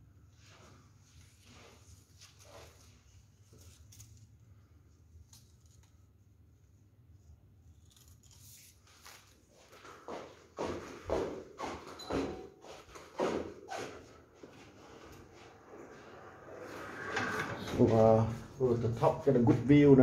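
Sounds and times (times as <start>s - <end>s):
rustling handling noise: 0.4s - 6.3s
quiet footsteps: 8.9s - 16.9s
low room hum: 14.1s - 20.0s.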